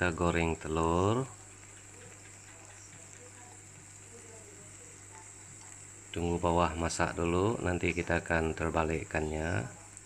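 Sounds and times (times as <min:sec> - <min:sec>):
food sizzling in a pan: 0:00.0 - 0:10.0.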